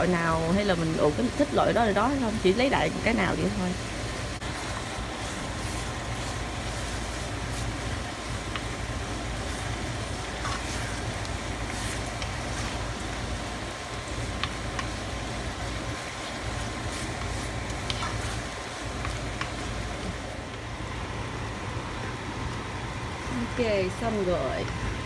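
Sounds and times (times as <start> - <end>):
food sizzling in a frying pan: 0.0 - 20.6
steady low hum: 0.0 - 25.0
wooden spoon tapping and scraping: 10.4 - 12.9, 14.2 - 15.1, 15.8 - 20.1.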